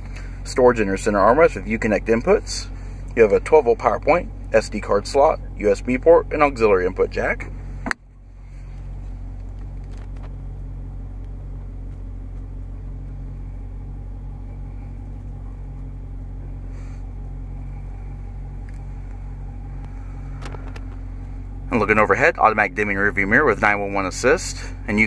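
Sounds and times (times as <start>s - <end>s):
car engine idling rumble: 0.0s - 25.0s.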